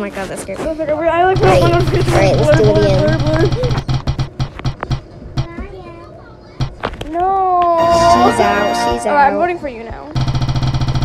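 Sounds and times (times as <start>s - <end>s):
girl speaking: 0.8s - 3.8s, 5.4s - 9.8s
spinning wheel ticking: 1.4s - 5.5s, 10.2s - 11.0s.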